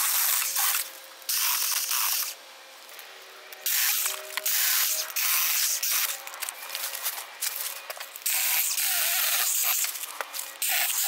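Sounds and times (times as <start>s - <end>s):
mini chainsaw cutting stems: 0.0s - 2.4s, 3.5s - 11.0s.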